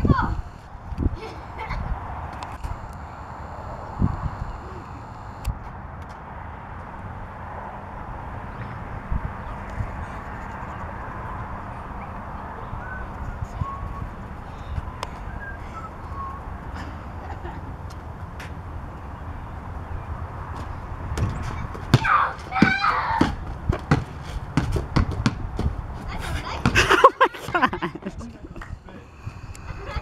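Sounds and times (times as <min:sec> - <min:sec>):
basketball bouncing on concrete: 0:20.5 - 0:27.7
people shouting: 0:22.0 - 0:23.3.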